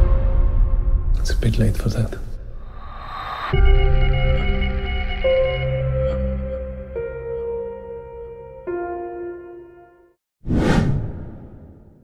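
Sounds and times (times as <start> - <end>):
whoosh with low rumble: 10.5 - 12.0.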